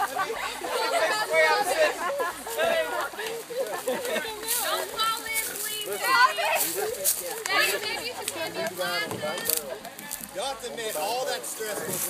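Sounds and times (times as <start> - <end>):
young people talking: 0.0 - 12.0.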